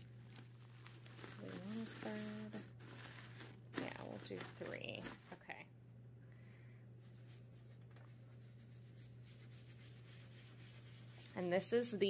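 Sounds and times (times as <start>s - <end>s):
low steady hum: 0.0s - 12.0s
brush rubbing on leather: 7.1s - 11.6s.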